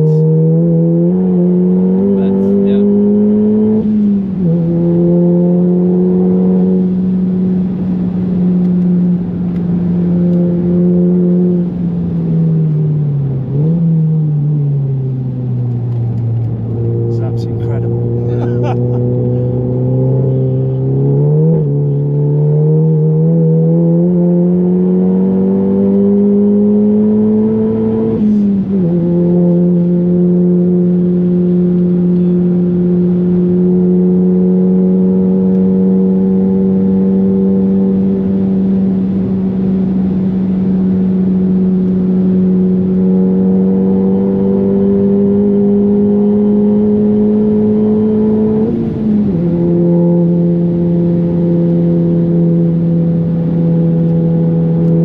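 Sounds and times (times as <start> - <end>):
car engine accelerating hard: 0.0 - 55.0.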